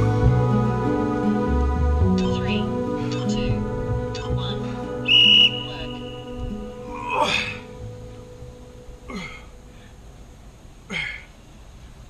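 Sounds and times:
background music: 0.0 - 10.6
electronic beep: 5.0 - 6.8.

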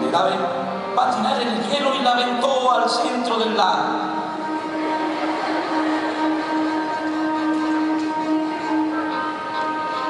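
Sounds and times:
orchestra holding sustained chord: 4.0 - 10.0.

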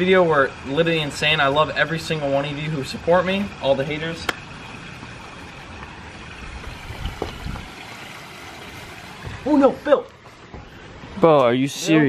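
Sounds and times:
trickling water: 0.0 - 12.0
soft low thumps: 9.2 - 11.2.

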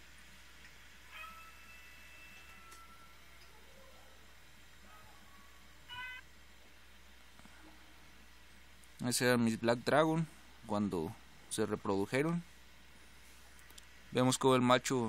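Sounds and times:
low room hum: 0.0 - 15.0
small animal high calls: 5.9 - 6.2.

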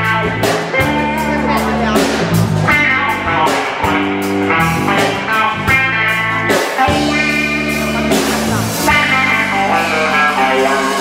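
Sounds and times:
electric bass: 0.0 - 11.0
electric guitars: 0.0 - 11.0
drum hits: 0.5 - 9.8.

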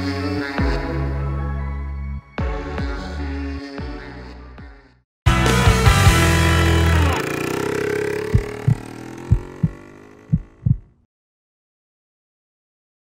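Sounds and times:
low heartbeat-like thumps: 8.3 - 10.9.

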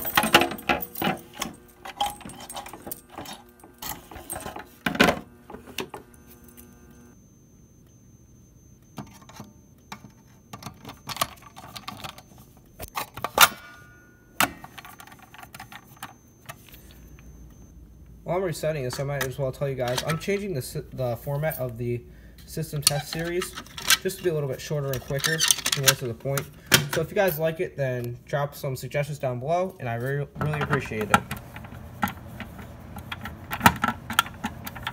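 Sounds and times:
keys jangling: 0.0 - 4.7, 24.9 - 26.0.

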